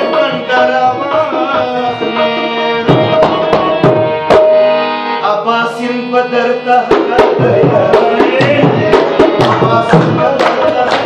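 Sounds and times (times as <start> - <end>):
hand drum playing: 0.0 - 4.6, 6.9 - 11.0
harmonium chords: 0.0 - 11.0.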